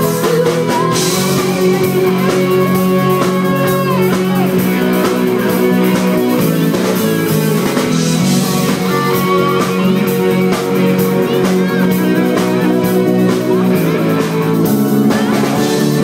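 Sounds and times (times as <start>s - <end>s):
bending lead guitar melody: 0.0s - 16.0s
drums: 0.0s - 16.0s
keyboards: 0.0s - 16.0s.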